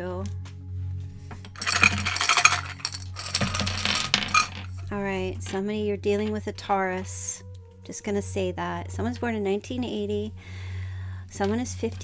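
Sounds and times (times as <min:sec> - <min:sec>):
small metal pieces clinking: 0:01.5 - 0:04.9.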